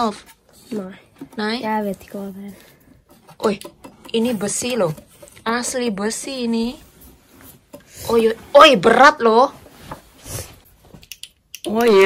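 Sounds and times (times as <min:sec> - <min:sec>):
person speaking: 0:00.0 - 0:02.7.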